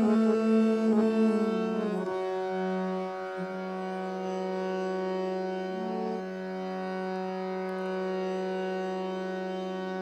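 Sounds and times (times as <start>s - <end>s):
harmonium drone: 0.0s - 10.0s.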